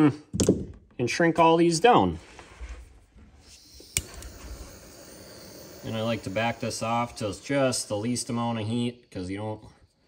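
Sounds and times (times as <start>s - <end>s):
torch flame hissing: 2.2s - 9.2s
torch igniter click: 3.5s - 8.4s.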